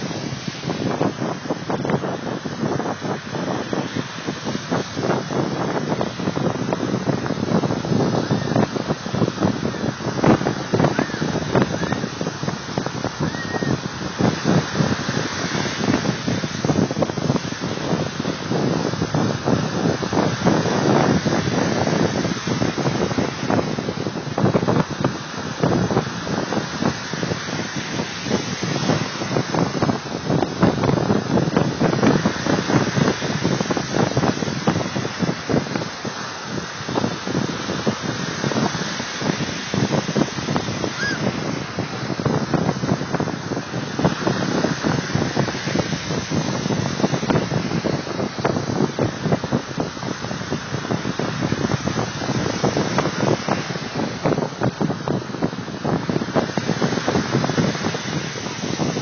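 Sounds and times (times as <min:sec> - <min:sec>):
waves rushing: 0:00.0 - 0:59.0
wind buffeting microphone: 0:00.0 - 0:59.0.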